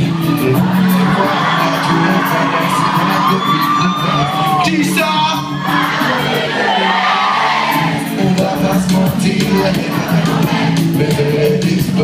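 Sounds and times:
audience screaming and cheering: 0.0s - 12.0s
loud pop music over speakers: 0.0s - 12.0s.

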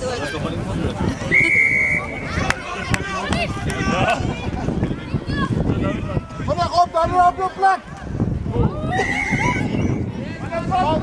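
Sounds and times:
voices of crowd and players: 0.0s - 11.0s
referee whistle blast: 1.3s - 2.4s.

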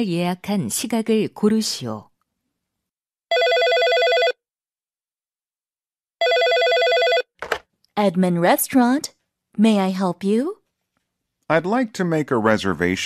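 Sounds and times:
telephone ringing: 3.3s - 4.4s, 6.2s - 7.6s.

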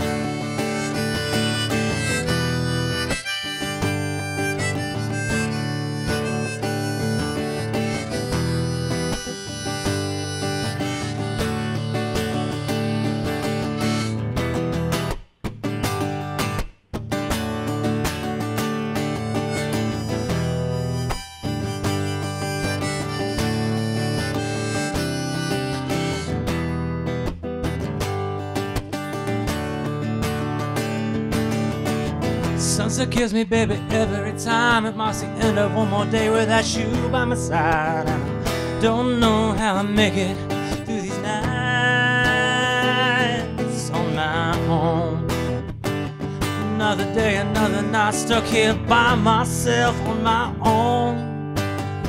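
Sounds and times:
harmonica solo: 0.0s - 14.8s, 18.8s - 27.0s, 35.5s - 39.6s, 40.5s - 44.3s
strummed acoustic guitar: 0.0s - 52.0s.

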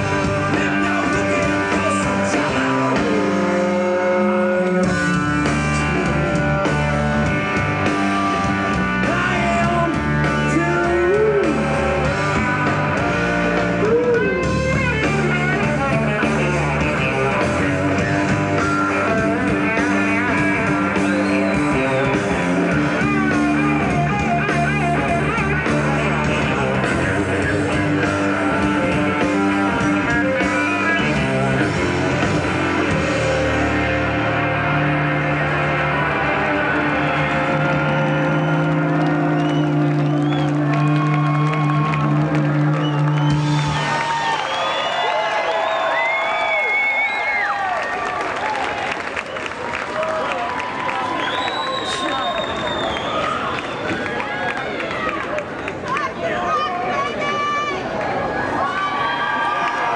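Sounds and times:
person singing: 0.0s - 4.8s, 9.0s - 12.7s
live rock band playing: 0.0s - 47.4s.

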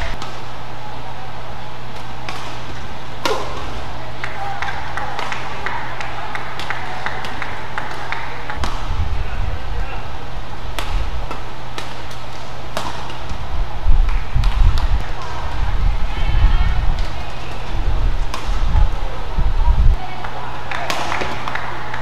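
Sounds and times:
rackets striking shuttlecock: 0.0s - 0.6s, 1.9s - 9.0s, 10.7s - 15.6s, 16.9s - 19.0s, 20.0s - 21.7s
voices in a hall: 0.0s - 11.7s, 12.5s - 22.0s.

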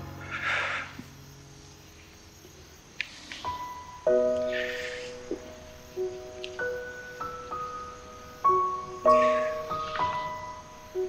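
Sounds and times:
faint even hiss: 0.0s - 11.0s
sustained music notes: 3.4s - 11.0s.

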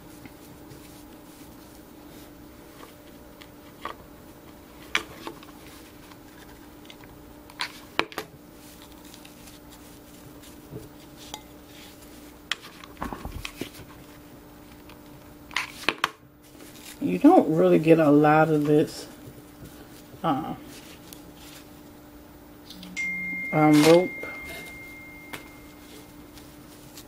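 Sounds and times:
faint steady hum: 0.0s - 27.0s.

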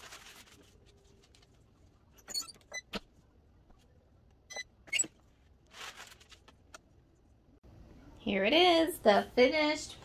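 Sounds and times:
heat press clicks and squeaks: 2.2s - 3.0s, 4.5s - 5.2s.

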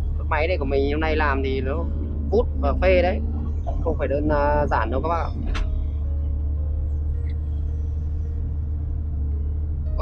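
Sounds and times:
diesel engine drone: 0.0s - 10.0s.

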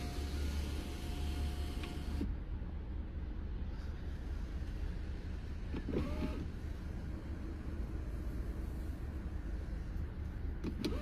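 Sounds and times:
power window motor whine: 0.0s - 2.3s, 5.8s - 6.5s, 10.7s - 11.0s.

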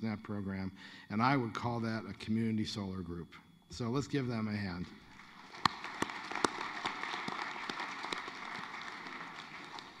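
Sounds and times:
audience applauding: 5.1s - 10.0s
loud single pair clapping: 5.5s - 10.0s.

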